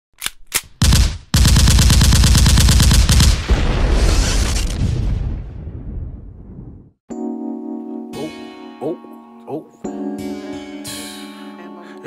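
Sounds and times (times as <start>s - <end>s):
gunshots: 0.6s - 4.8s
rapid automatic gunfire: 0.8s - 3.5s.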